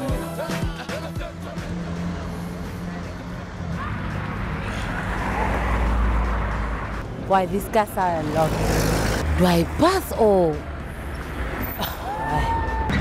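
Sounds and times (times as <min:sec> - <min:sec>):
car engines running: 0:00.2 - 0:12.2
vehicle passing close: 0:01.4 - 0:12.0.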